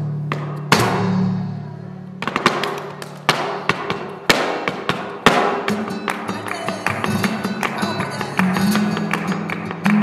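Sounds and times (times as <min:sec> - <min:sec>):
heeled shoes striking wooden board: 0:00.2 - 0:01.2, 0:02.2 - 0:06.4.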